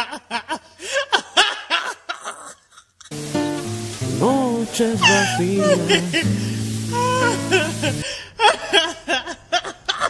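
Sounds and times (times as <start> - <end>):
person laughing: 0.0 - 3.2, 5.0 - 10.0.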